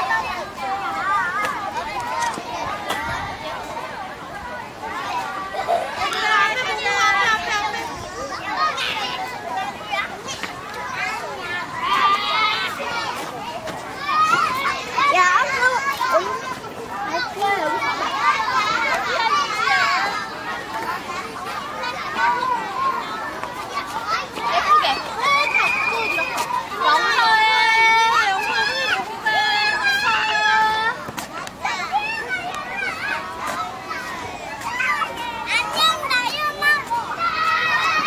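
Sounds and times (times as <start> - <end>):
children talking and calling out: 0.0 - 38.0.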